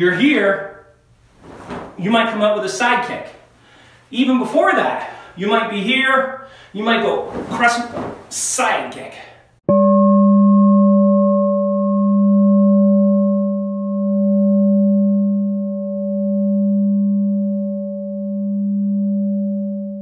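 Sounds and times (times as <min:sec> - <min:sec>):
singing bowl ringing: 0:09.7 - 0:20.0.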